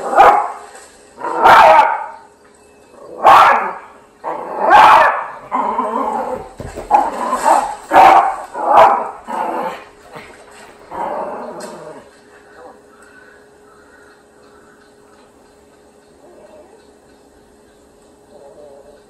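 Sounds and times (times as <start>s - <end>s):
small dog barking: 0.1s - 0.6s, 1.2s - 2.2s, 3.2s - 3.8s, 4.6s - 5.4s, 7.5s - 9.2s.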